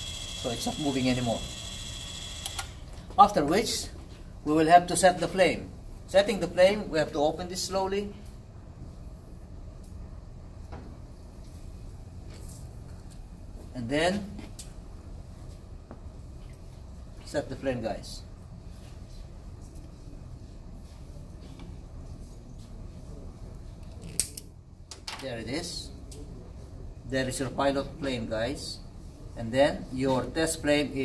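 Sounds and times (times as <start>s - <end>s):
low steady hum: 0.0s - 31.0s
flash point tester igniter clicks: 2.4s - 2.7s.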